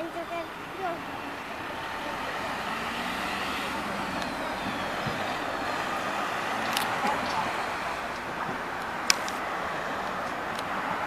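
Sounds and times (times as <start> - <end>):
passing vehicles rushing hiss: 0.0 - 11.0.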